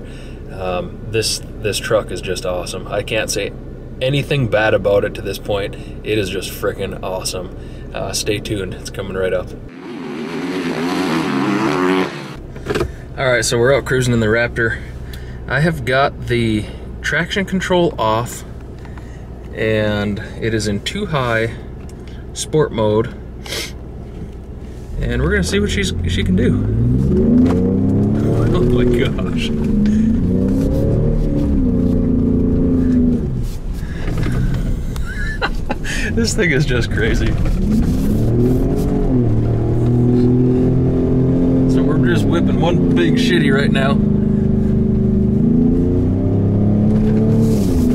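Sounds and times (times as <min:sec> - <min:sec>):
engine revving: 0:09.7 - 0:12.4, 0:24.9 - 0:47.9.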